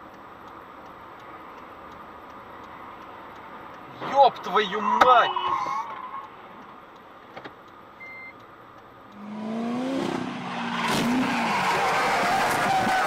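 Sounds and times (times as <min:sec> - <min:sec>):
road and wind noise: 0:00.0 - 0:13.0
short high beep: 0:08.0 - 0:08.4
car engine accelerating: 0:09.1 - 0:13.0.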